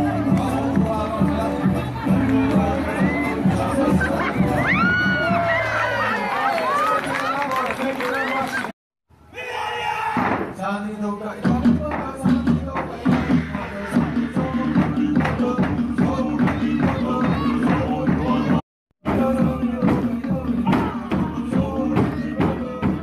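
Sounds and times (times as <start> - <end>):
crowd shouting and cheering: 0.0 - 10.6, 12.6 - 23.0
voices over music: 10.8 - 23.0
show music with pulsing beat: 11.5 - 23.0.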